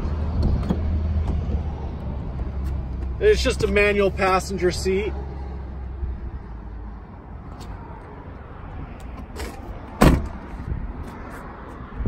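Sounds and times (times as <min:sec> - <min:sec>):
truck door slamming: 0:09.3 - 0:10.6.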